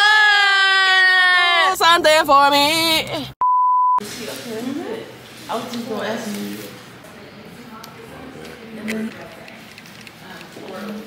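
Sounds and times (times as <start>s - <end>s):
censor bleep: 3.4s - 4.0s.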